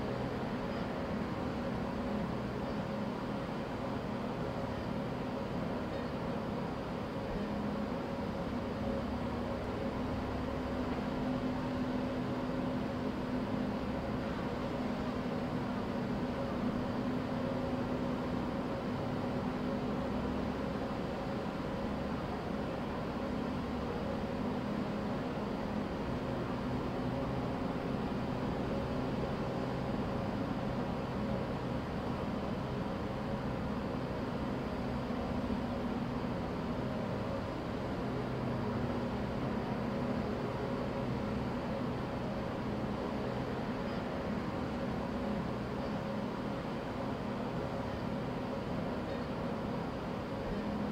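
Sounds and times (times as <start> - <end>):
machinery hum with low rumble: 0.0 - 50.9.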